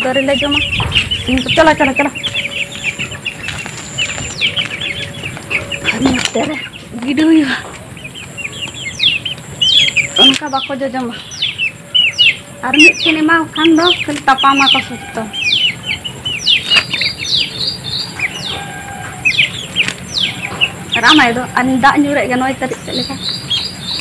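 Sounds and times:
lower voice-like calls: 0.0s - 21.6s
chicks peeping: 0.0s - 24.0s.

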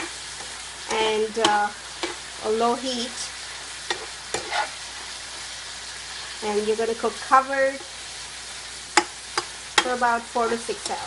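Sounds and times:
spatula scraping pan: 0.0s - 5.6s, 8.9s - 11.0s
meat sizzling in frying pan: 0.0s - 11.0s.

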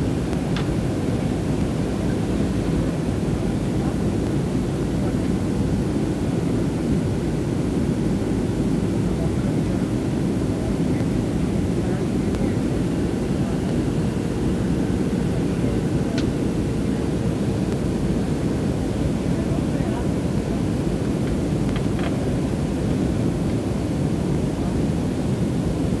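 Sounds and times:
jet cabin engine rumble: 0.0s - 26.0s.

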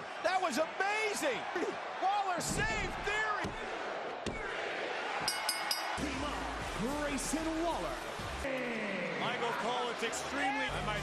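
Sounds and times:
crowd cheering: 0.0s - 11.0s
timekeeper's bell struck: 5.3s - 6.0s.

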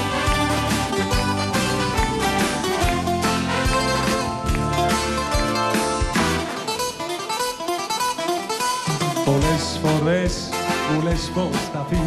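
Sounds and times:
plucked-string melody: 0.0s - 10.3s
live band playing: 0.0s - 12.0s.

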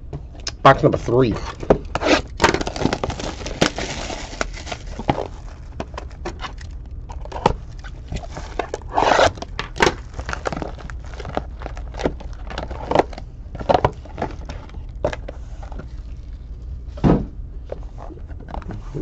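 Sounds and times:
plastic shrink wrap crinkling: 1.5s - 16.7s.

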